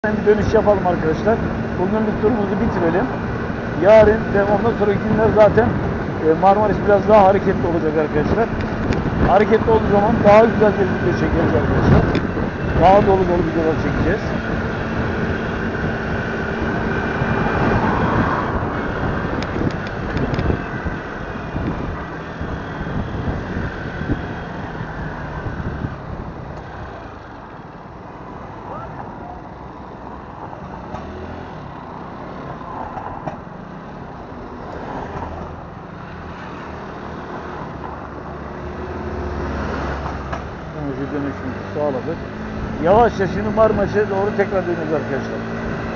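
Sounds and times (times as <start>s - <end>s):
road and wind noise: 0.0s - 45.9s.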